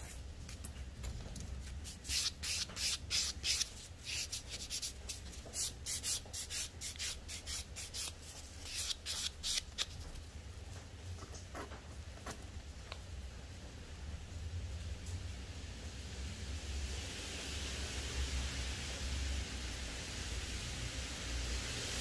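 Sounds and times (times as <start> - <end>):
nail file filing fingernail: 1.9 - 10.0.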